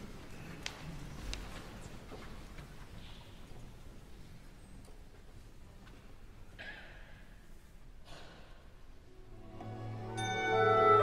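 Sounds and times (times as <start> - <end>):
faint concert hall ambience: 0.0 - 11.0.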